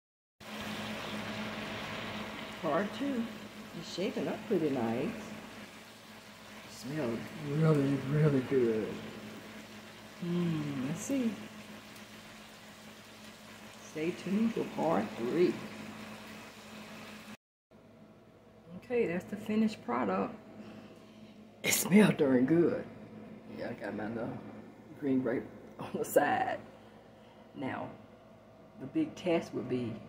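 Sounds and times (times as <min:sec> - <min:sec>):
broth bubbling in a pan: 0:00.4 - 0:17.4
steady low hum: 0:00.5 - 0:17.2.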